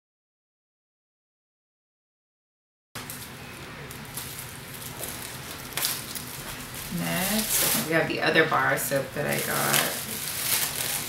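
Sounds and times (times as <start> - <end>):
cloth rustling around soap: 3.9 - 11.0.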